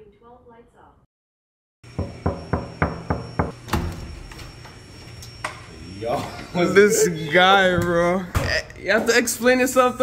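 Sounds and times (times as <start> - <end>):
knocking on a door: 1.9 - 3.8.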